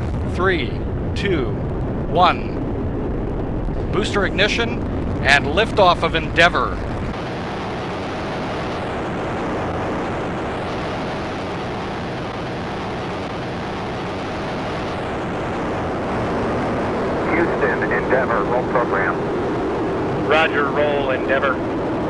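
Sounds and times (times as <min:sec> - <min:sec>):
loud rocket roar: 0:00.0 - 0:22.0.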